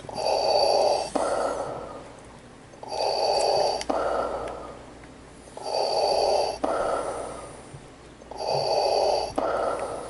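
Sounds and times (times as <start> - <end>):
man breathing through face mask: 0.1 - 2.0, 2.8 - 4.8, 5.6 - 10.0.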